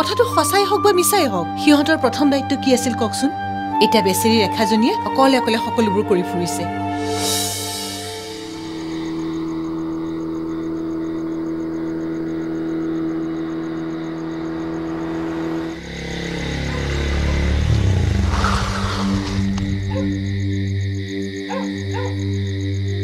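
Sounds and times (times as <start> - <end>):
musical drone: 0.0 - 23.0
motorcycle engine slowing: 14.1 - 20.6.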